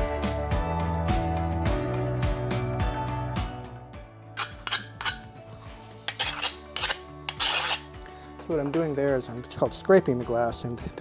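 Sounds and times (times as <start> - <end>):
background music: 0.0 - 11.0
glass scraping on glass: 4.4 - 5.3, 6.1 - 8.0.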